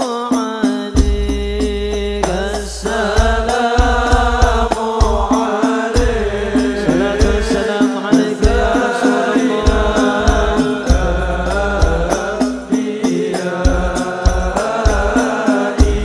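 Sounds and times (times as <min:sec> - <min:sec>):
men singing devotional song: 0:00.0 - 0:16.0
bass drum thumps: 0:01.0 - 0:05.4, 0:06.0 - 0:07.7, 0:09.7 - 0:13.0, 0:13.6 - 0:15.2, 0:15.8 - 0:16.0.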